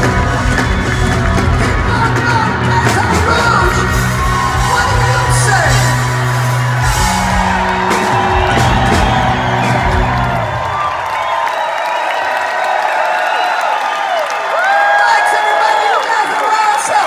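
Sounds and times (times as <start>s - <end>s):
rock band holding low notes: 0.0s - 11.2s
crowd cheering and whooping: 0.0s - 17.0s.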